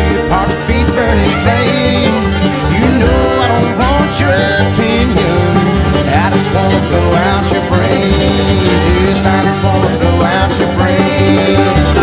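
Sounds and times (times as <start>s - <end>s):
acoustic guitar picking: 0.0s - 12.0s
banjo: 0.0s - 12.0s
upright bass line: 0.0s - 12.0s.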